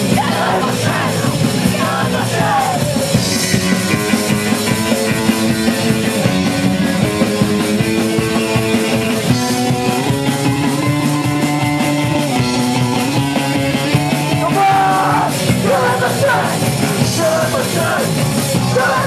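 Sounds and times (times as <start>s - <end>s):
bass guitar: 0.0s - 19.0s
distorted electric guitar: 0.0s - 19.0s
drum kit: 0.0s - 19.0s.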